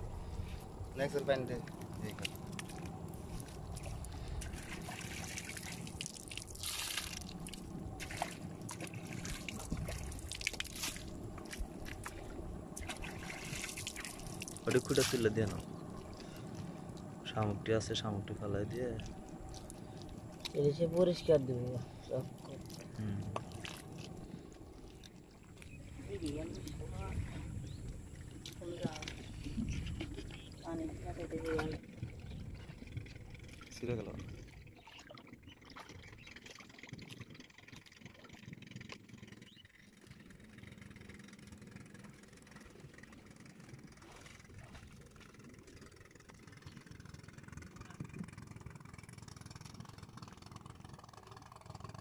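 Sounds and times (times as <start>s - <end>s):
steady low rumble: 0.0s - 52.0s
water dripping and trickling on mud: 1.1s - 18.1s, 18.7s - 27.1s.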